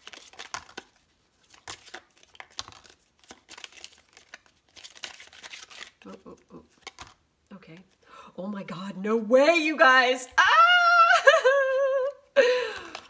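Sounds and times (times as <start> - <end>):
cards being shuffled: 0.0 - 8.0, 11.6 - 13.0.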